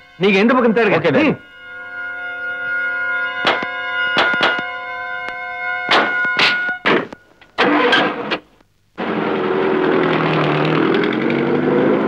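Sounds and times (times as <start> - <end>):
sharp knocks: 3.4 - 4.7, 5.9 - 7.2
car engine starting and revving: 7.6 - 8.4, 9.0 - 12.0.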